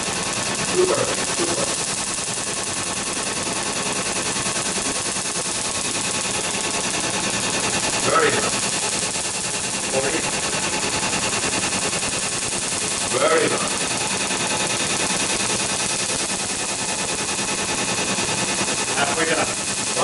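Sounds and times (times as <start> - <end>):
laser firing snapping pulses: 0.5 - 20.0.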